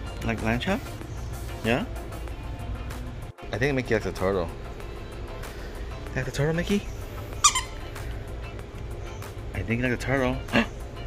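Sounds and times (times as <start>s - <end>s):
background music: 0.0s - 11.0s
dog toy squeaker: 7.4s - 7.9s.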